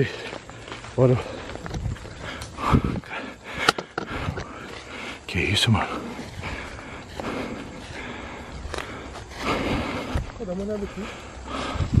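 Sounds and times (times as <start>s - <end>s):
footsteps on forest trail: 0.0s - 12.0s
rustle of grass and leaves: 0.0s - 12.0s.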